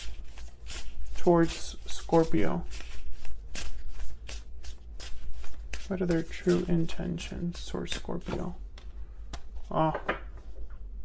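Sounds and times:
cards being shuffled: 0.0 - 10.6
person speaking: 0.8 - 3.0, 5.7 - 8.8, 9.6 - 10.6.

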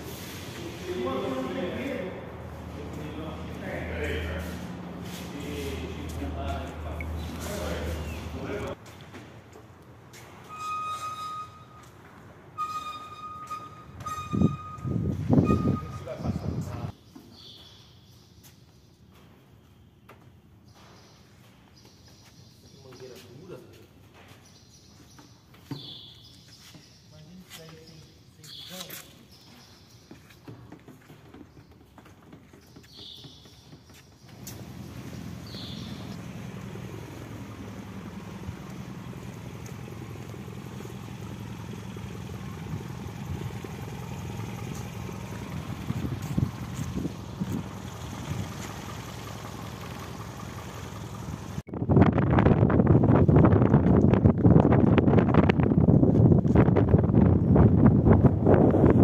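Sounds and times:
engine humming: 0.0 - 17.0, 29.6 - 59.0.

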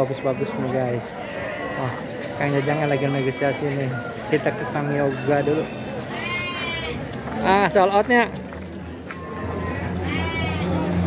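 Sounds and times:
sheep bleating: 0.0 - 3.8, 5.0 - 7.0, 9.4 - 10.9.

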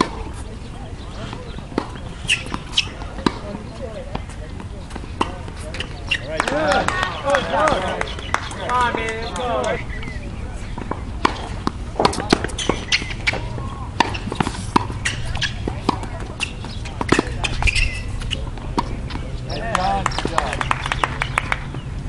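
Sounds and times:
racket hitting tennis ball: 0.0 - 21.8
ball bouncing on hard court: 10.8 - 20.5.

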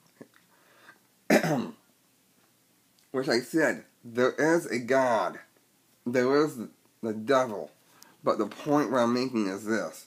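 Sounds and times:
man clearing his throat: 1.3 - 1.8.

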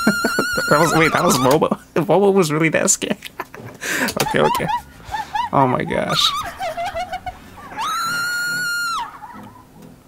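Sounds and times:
woman screaming: 0.0 - 1.6, 4.7 - 9.4.

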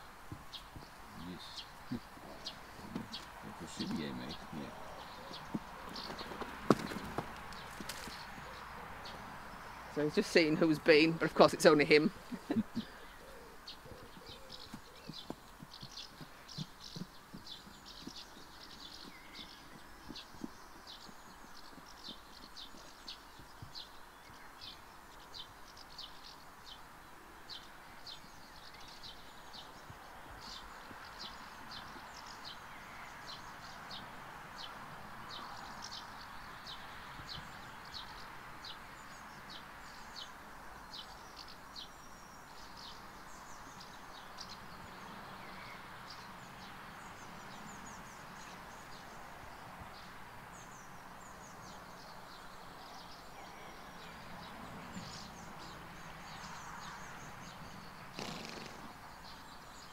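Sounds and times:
faint outdoor hiss: 0.0 - 59.9
small bird chirping: 12.1 - 26.8.

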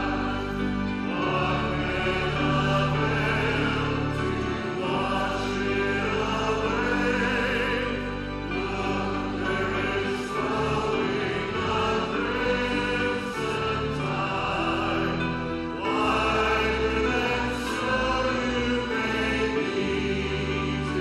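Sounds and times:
choir singing worship music: 0.0 - 21.0.

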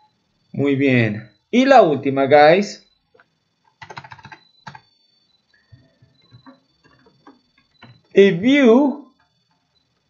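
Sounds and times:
keyboard typing clicks: 3.2 - 4.9, 5.8 - 8.2.

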